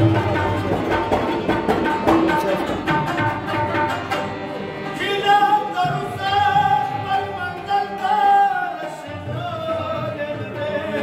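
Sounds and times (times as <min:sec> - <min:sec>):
tabla strokes: 0:00.0 - 0:04.5
harmonium: 0:00.0 - 0:11.0
rabab: 0:00.0 - 0:11.0.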